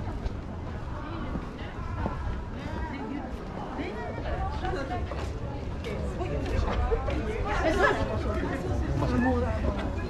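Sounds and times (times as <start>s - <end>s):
low street rumble: 0.0s - 10.0s
passersby chatting: 0.0s - 10.0s.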